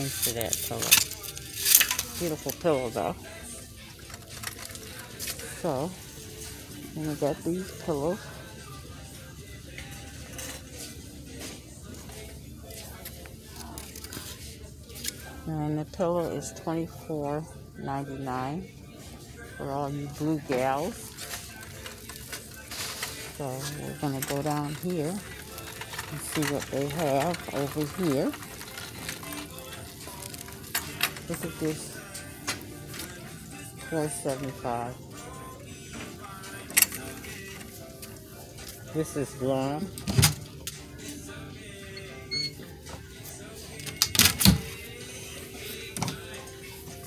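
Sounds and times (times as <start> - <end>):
faint background music: 0.0 - 47.0.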